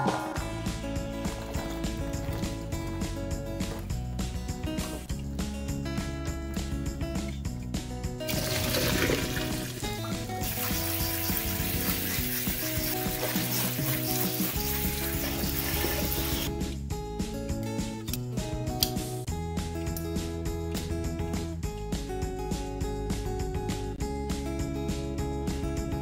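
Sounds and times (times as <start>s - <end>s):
background music: 0.0s - 26.0s
tap water running into colander: 8.3s - 16.5s.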